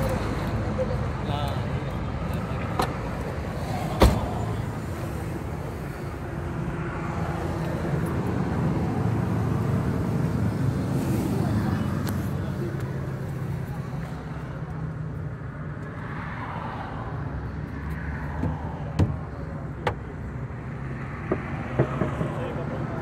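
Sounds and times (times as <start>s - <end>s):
people talking: 0.8s - 2.9s, 11.2s - 15.0s, 22.2s - 23.0s.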